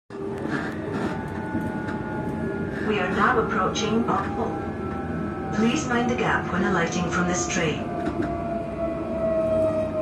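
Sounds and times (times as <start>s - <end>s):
train running rumble: 0.1s - 10.0s.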